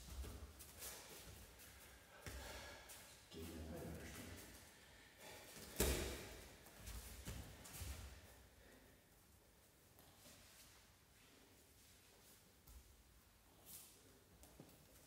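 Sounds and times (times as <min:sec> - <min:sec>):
bare feet shuffling on mats: 0:00.0 - 0:04.7, 0:05.3 - 0:08.5
sharp slap or thud: 0:05.7 - 0:06.3.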